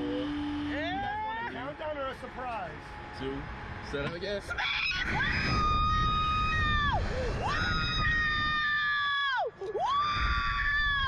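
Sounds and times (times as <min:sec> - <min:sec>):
low background rumble: 0:00.0 - 0:11.0
steady hum: 0:00.0 - 0:11.0.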